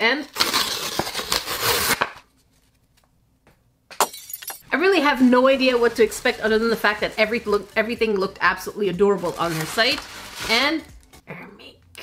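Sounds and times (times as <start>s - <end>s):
paper package tearing: 0.3s - 2.3s, 5.5s - 11.1s.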